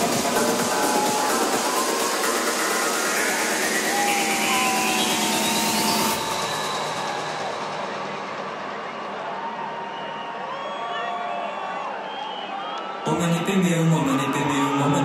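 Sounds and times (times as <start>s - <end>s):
crowd cheering and whooping: 0.0s - 15.0s.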